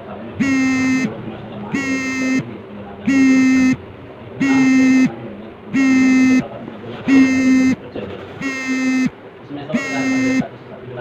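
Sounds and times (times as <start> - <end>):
muffled talk: 0.0 - 11.0
low electronic buzzer beeps: 0.4 - 1.2, 1.8 - 2.5, 3.1 - 3.8, 4.4 - 5.2, 5.8 - 6.5, 7.1 - 7.8, 8.4 - 9.2, 9.8 - 10.5.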